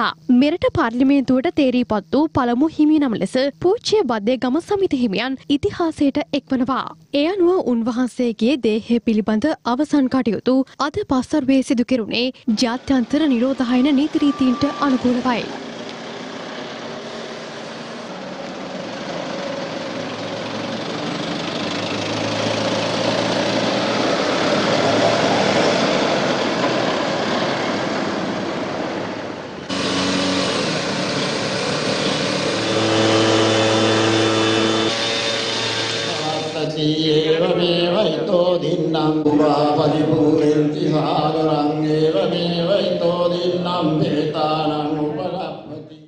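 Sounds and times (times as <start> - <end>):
van engine running: 12.7 - 37.6
low engine hum: 12.8 - 36.7.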